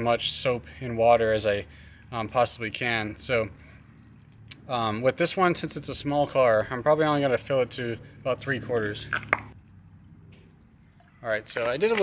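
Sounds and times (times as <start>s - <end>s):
water dripping into bucket: 0.0s - 12.0s.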